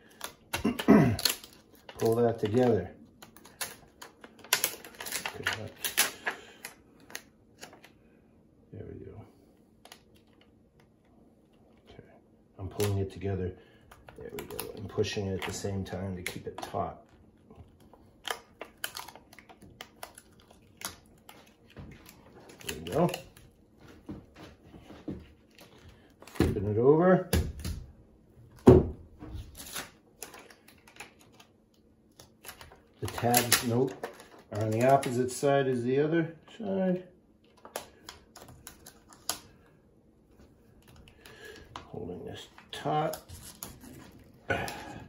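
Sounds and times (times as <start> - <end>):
paper label rustling: 13.9 - 26.4, 29.4 - 35.8.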